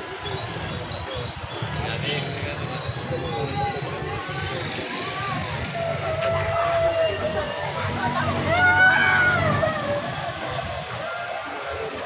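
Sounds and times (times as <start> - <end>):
indistinct voices: 0.0 - 12.0
street traffic: 0.0 - 12.0.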